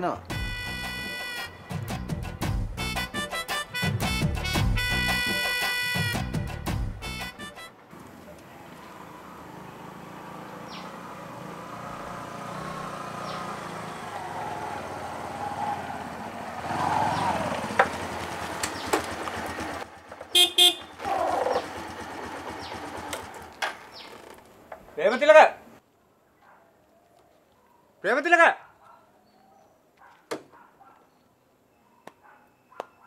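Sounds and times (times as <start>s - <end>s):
motorcycle horn toots: 0.4s - 1.7s, 2.9s - 6.3s, 20.3s - 21.0s
small motorcycle engine running: 8.9s - 24.4s.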